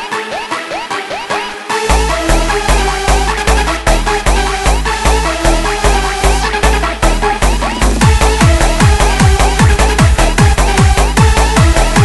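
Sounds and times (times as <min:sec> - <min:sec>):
heavy kick drum: 0:06.6 - 0:12.0.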